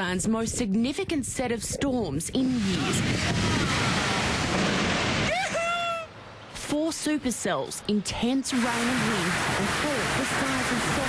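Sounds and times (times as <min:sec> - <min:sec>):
gusting wind: 0:00.0 - 0:11.0
heavy rain hitting microphone: 0:02.8 - 0:05.4, 0:08.4 - 0:11.0.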